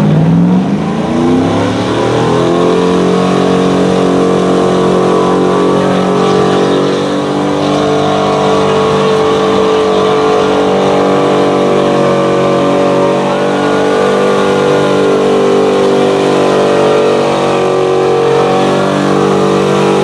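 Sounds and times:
truck engine revving hard: 0.0 - 20.0.

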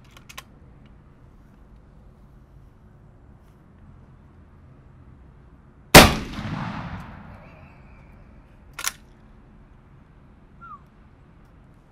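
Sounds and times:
shotgun shot with echo: 6.0 - 7.6.

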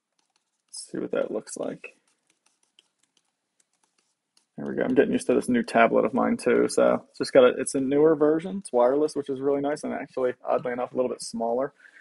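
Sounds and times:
faint computer mouse clicks: 2.0 - 5.0.

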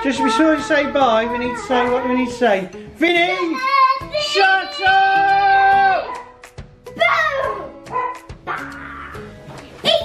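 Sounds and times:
child shouting: 0.0 - 2.3, 3.2 - 6.3, 6.9 - 9.2
background music: 0.0 - 10.0.

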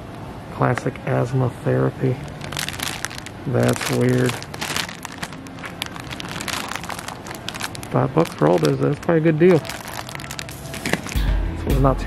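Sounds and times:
plastic bag crinkling: 2.0 - 11.3.

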